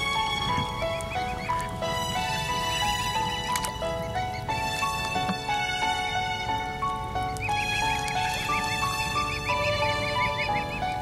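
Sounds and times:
background music melody: 0.0 - 11.0.

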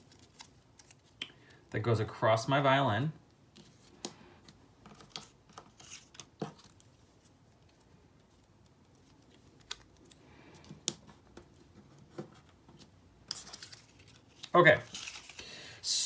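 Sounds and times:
paper rustling: 3.6 - 15.5.

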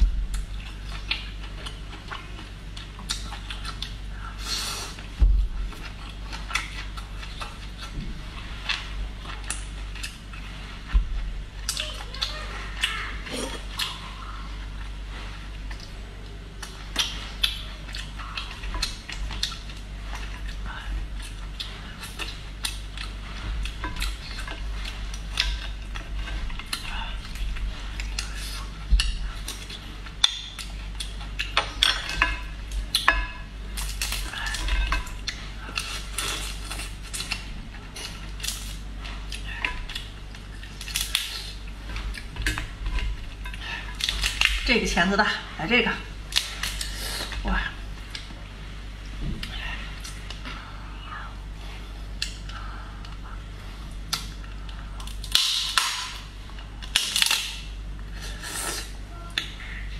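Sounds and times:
steady low hum: 0.0 - 59.9
lobster shell cracking: 40.8 - 41.5, 55.0 - 57.7.

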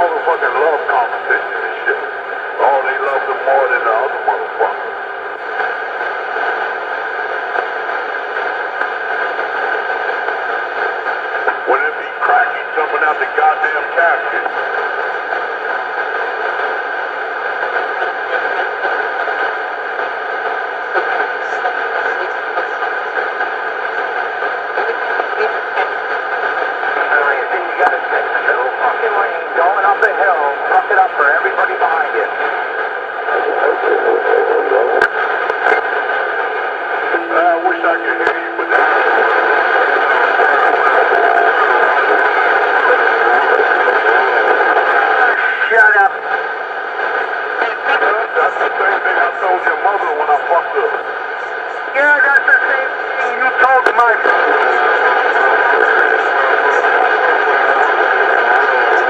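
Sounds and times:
radio static hiss: 0.0 - 59.0
voices over two-way radio: 0.0 - 59.0.

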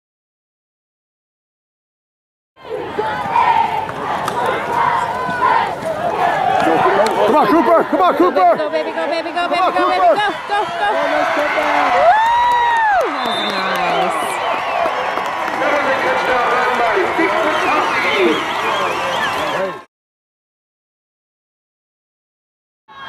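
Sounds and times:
spectators shouting and cheering: 2.6 - 19.9.

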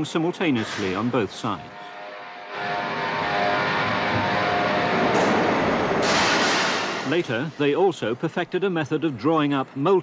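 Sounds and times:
grinding machinery running: 2.5 - 6.1.

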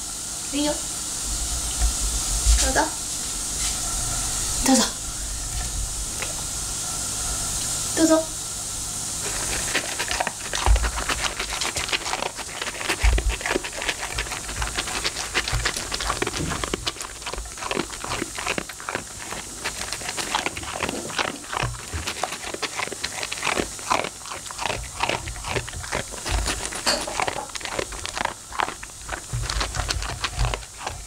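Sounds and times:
dog crunching dry kibble: 9.2 - 31.0.

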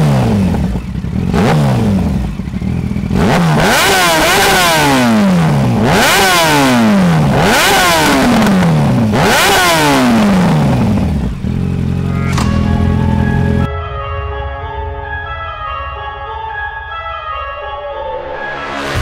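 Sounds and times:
motorcycle engine revving: 0.0 - 13.7.

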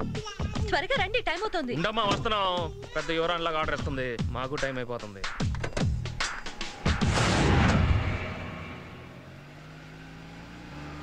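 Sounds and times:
vehicle engine revving: 5.4 - 11.0.

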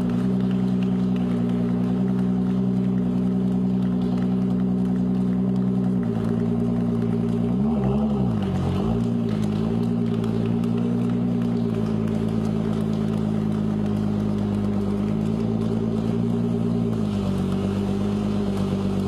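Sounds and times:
car engine running at low revs: 0.0 - 19.0.

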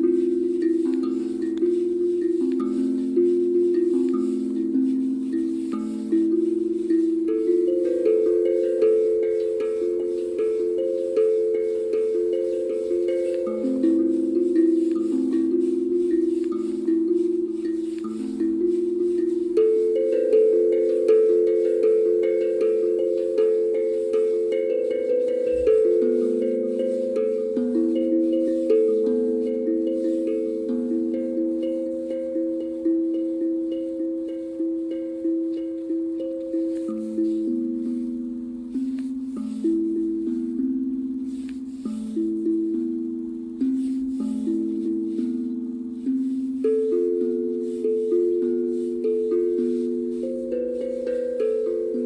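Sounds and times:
steel tongue drum notes: 0.0 - 52.0.

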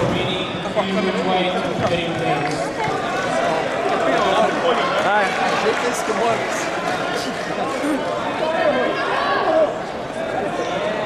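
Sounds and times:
chatter of overlapping voices: 0.0 - 11.0.

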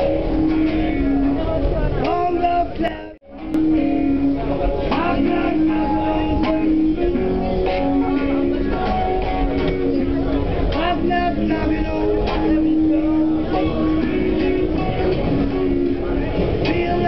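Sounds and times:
electric guitar sliding notes: 0.0 - 17.0
subway car rumbling: 0.0 - 17.0.

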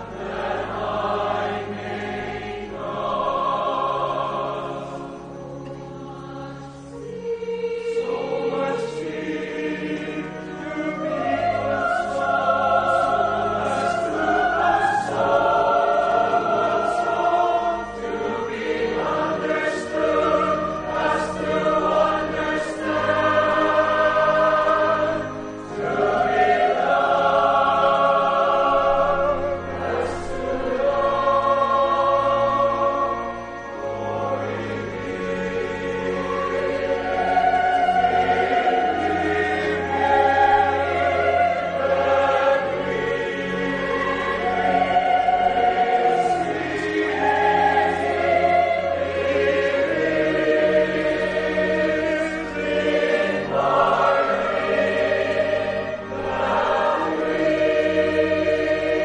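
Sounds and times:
choir singing a hymn: 0.0 - 59.0.

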